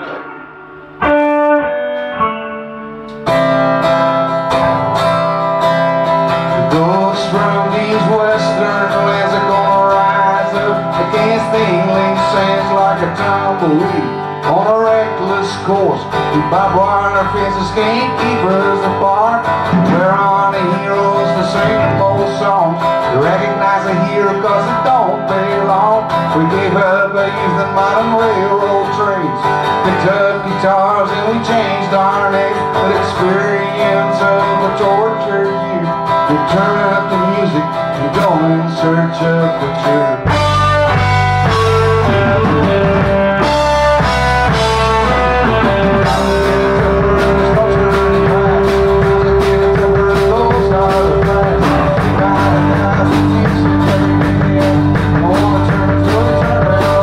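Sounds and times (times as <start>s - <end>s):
single guitar notes: 0.0s - 13.2s, 40.2s - 57.0s
rock band playing: 0.0s - 57.0s
lead vocal singing: 6.4s - 57.0s.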